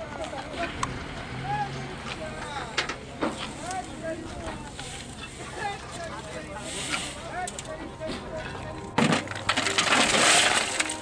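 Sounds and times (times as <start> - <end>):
bricks clattering and clinking: 8.4 - 11.0.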